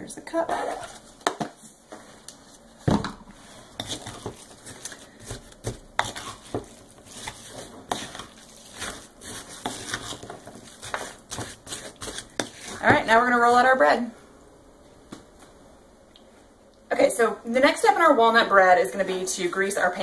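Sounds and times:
spoon scraping in glass bowl: 3.8s - 13.6s.

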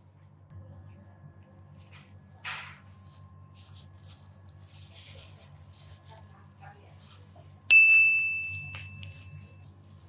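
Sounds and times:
bell-like ding: 7.7s - 9.5s.

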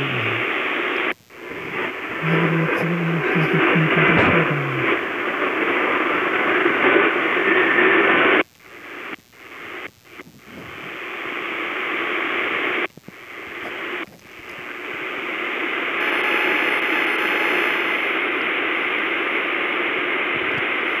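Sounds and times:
radio static hiss: 0.0s - 21.0s.

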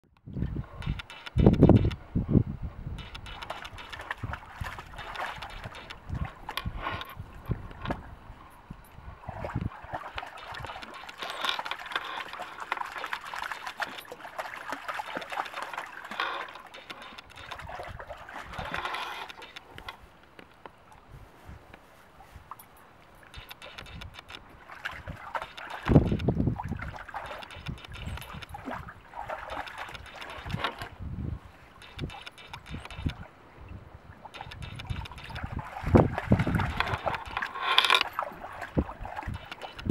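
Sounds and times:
dog splashing through stream: 3.1s - 6.6s, 9.1s - 19.8s, 23.2s - 31.0s.

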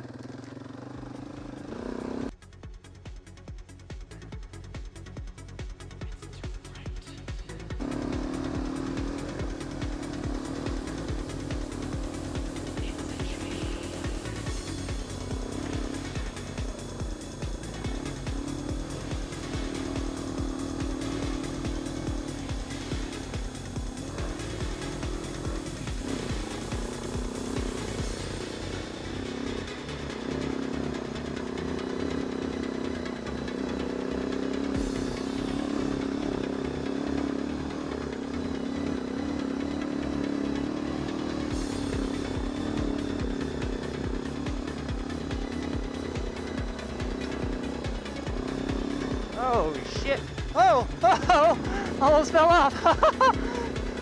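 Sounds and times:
quad engine revving: 0.0s - 2.4s, 5.6s - 54.0s
background music: 0.1s - 54.0s.

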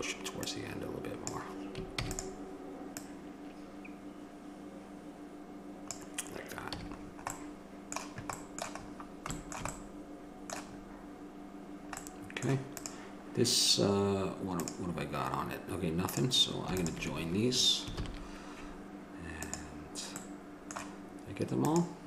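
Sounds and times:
low hum: 0.0s - 22.0s
keyboard typing: 1.2s - 2.4s, 5.9s - 9.8s, 16.1s - 17.2s
mouse clicks: 19.4s - 20.9s.

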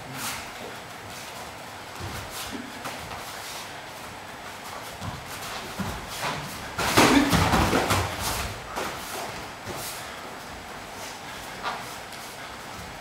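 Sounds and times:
thuds and footfalls on mat: 4.9s - 9.9s.

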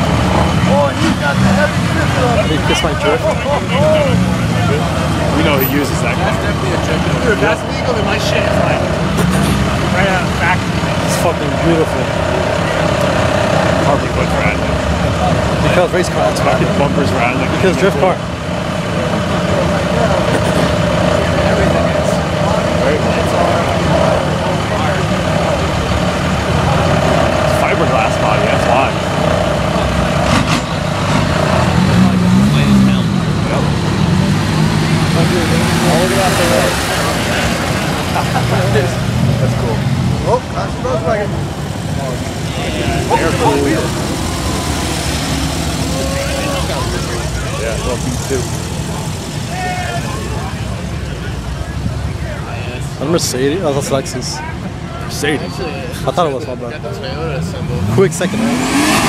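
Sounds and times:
people talking: 0.0s - 59.0s.

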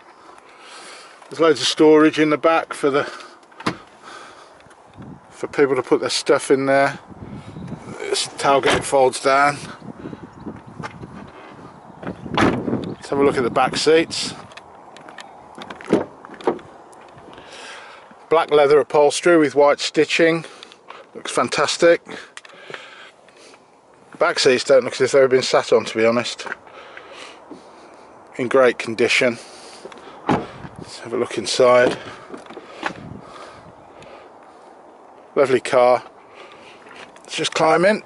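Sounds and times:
faint outdoor background noise: 0.0s - 38.0s
car door latch clunk: 3.6s - 3.8s, 12.3s - 12.8s, 30.2s - 30.7s
car door rubbing: 30.2s - 30.8s.

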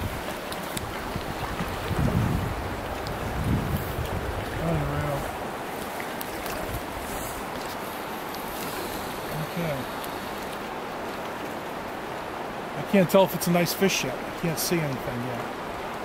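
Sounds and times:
wind buffeting microphone: 0.0s - 7.6s
creek water rushing: 0.0s - 16.0s.

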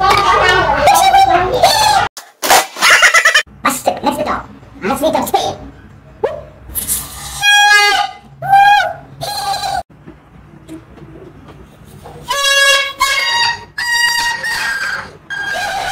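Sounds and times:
plastic toy horn honking: 12.2s - 15.8s.

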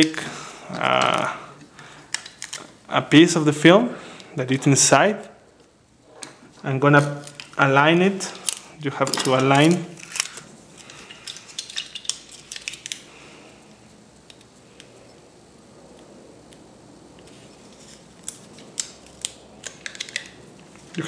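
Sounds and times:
hands handling film strips: 1.0s - 2.8s, 7.0s - 13.2s, 17.2s - 21.0s.

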